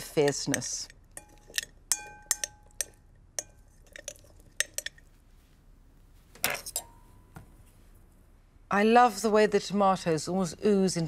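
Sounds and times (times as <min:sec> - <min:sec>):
spoon clinking glass bowl: 0:00.2 - 0:05.1.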